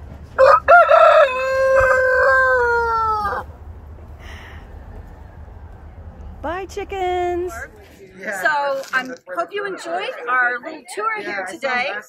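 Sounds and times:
rooster crowing: 0:00.4 - 0:03.5.

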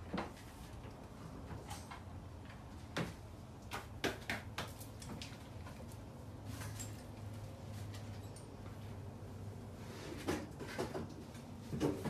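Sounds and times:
clicks and knocks on tiled floor: 0:10.2 - 0:12.0.

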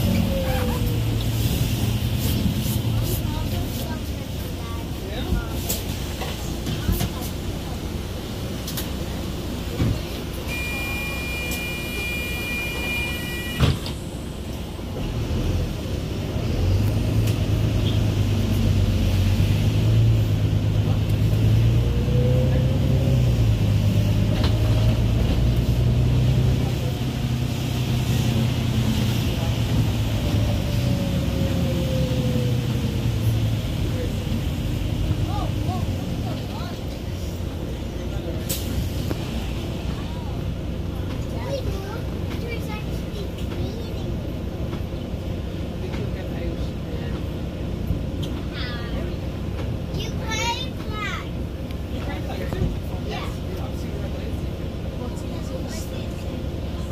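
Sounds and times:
bus engine drone: 0:00.0 - 0:56.9
bus doors shutting clunk: 0:09.7 - 0:14.7
electronic warning beep: 0:10.5 - 0:13.7.

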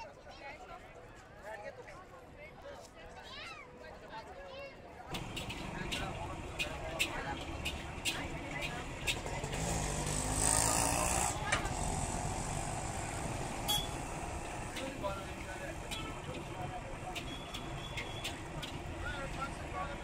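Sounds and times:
street noise with voices: 0:00.0 - 0:20.0
vehicle passing: 0:05.2 - 0:20.0.

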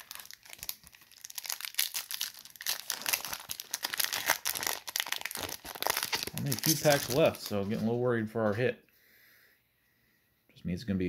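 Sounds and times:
plastic wrapper tearing and crinkling: 0:00.0 - 0:07.8.

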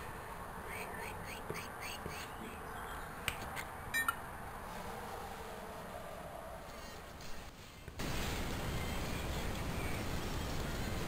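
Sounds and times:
steady hiss: 0:07.2 - 0:11.0.

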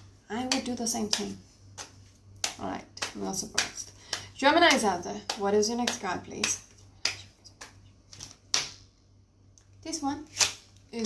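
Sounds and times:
card snapping: 0:10.3 - 0:10.6.

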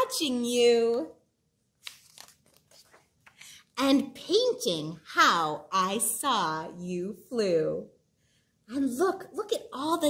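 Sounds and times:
paper rustling and crinkling: 0:01.8 - 0:03.4.

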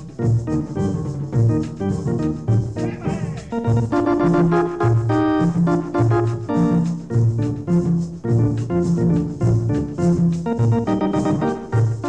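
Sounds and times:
electric organ chords: 0:00.0 - 0:12.0
bass line: 0:02.5 - 0:04.5.

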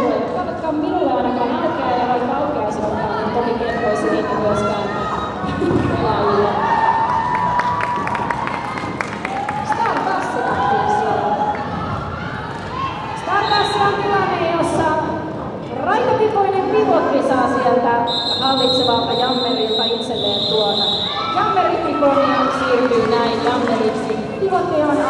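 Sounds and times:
voices talking in a hall: 0:00.0 - 0:25.0
referee whistle blast: 0:18.1 - 0:21.2.

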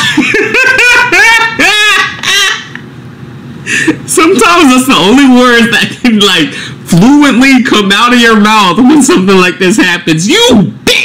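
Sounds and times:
man laughing: 0:00.0 - 0:02.8.

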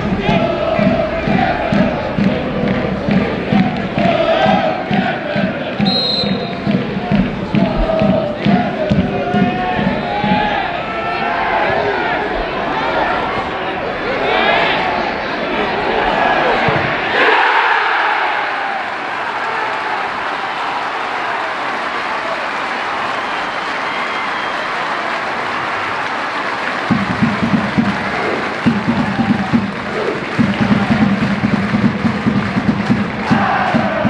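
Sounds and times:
rhythmic low beat: 0:00.0 - 0:10.8, 0:26.8 - 0:34.0
fans chanting: 0:00.0 - 0:22.1, 0:26.4 - 0:34.0
football crowd cheering: 0:00.0 - 0:34.0.

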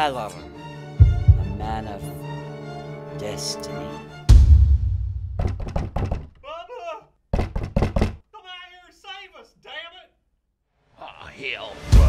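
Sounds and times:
deep boom: 0:01.0 - 0:02.1, 0:04.3 - 0:05.6
knocking: 0:05.4 - 0:06.4, 0:07.3 - 0:08.2.

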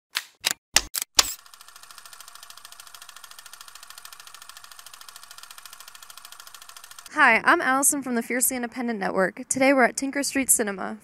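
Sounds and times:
rapid even clicking: 0:00.2 - 0:07.2.

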